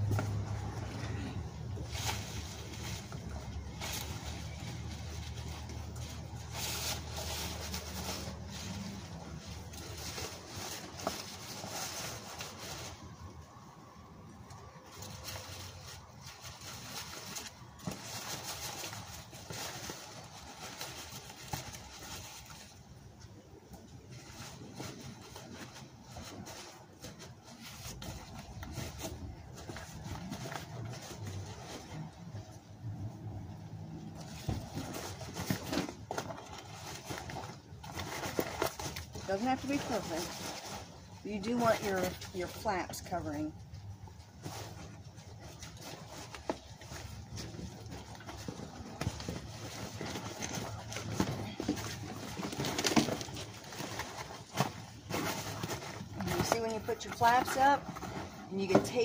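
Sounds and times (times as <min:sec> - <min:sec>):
cardboard boxes rustling and scraping: 0:00.0 - 0:13.4, 0:14.8 - 0:22.9, 0:24.0 - 0:32.4, 0:33.8 - 0:59.0
leafy branches crackling: 0:00.0 - 0:32.6.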